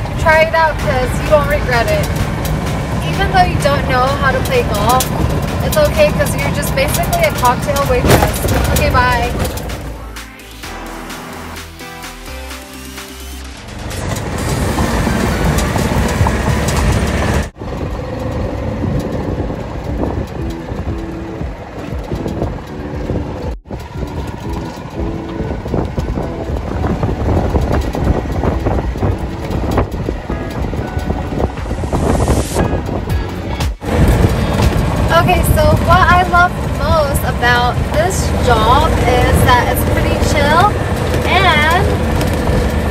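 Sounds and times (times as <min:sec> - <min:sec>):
wind buffeting microphone: 0:00.0 - 0:09.9, 0:14.0 - 0:42.9
golf cart driving: 0:00.0 - 0:42.9.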